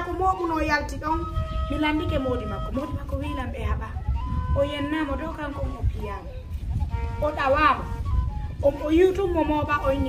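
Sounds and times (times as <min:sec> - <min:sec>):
woman talking: 0:00.0 - 0:04.0, 0:04.6 - 0:06.4, 0:07.2 - 0:08.0, 0:08.6 - 0:10.0.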